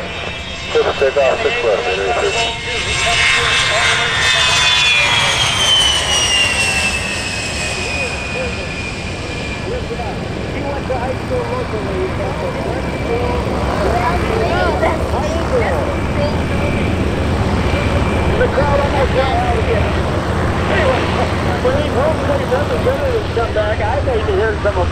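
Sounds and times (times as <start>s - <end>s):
high jet engine whine: 0.0s - 24.9s
jet aircraft taking off: 0.0s - 24.9s.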